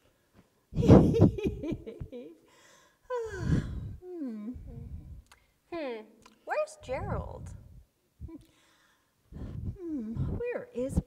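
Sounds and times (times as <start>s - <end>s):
breathy sounds: 2.5s - 5.5s, 8.2s - 10.4s.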